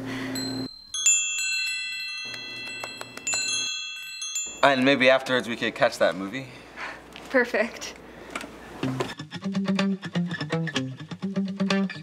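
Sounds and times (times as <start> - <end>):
chimes ringing: 0.0 - 5.7.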